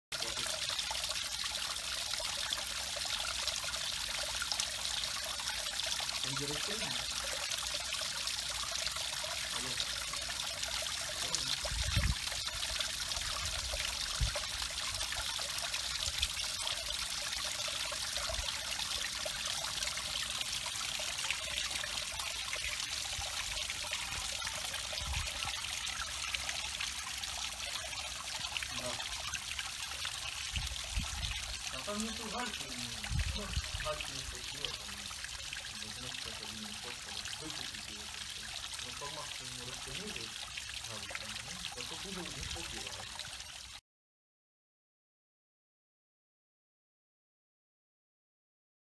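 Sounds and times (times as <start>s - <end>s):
water splashing into pond: 0.1s - 43.8s.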